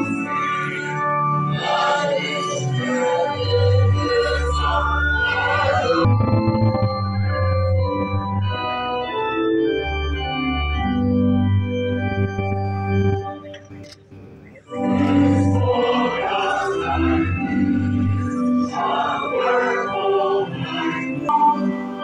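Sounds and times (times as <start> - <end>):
organ playing sustained chords: 0.0 - 22.0.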